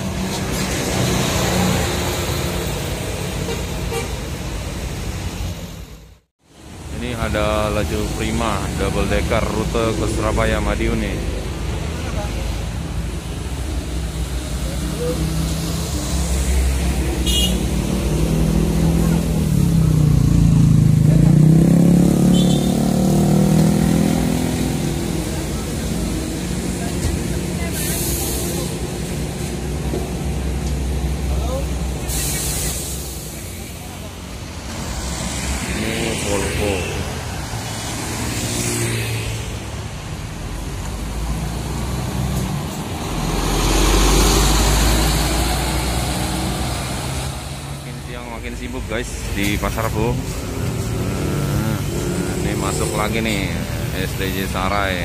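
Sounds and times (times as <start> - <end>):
diesel bus engines droning: 0.0 - 38.3, 39.3 - 55.0
air brake hissing bursts: 32.0 - 33.5.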